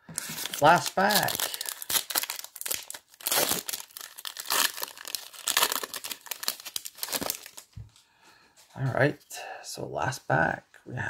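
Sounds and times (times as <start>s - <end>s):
wrapper tearing and crinkling: 0.2s - 7.7s.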